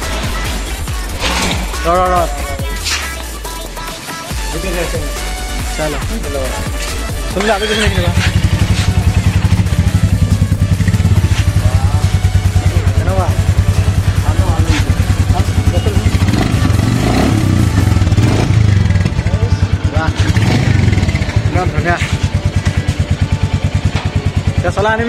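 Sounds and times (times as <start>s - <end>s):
motorcycle engine idling: 4.3s - 25.0s.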